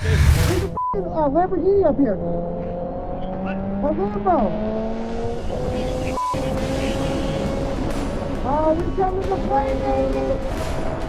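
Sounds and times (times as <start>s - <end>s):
motorcycle engine cruising: 1.2s - 11.0s.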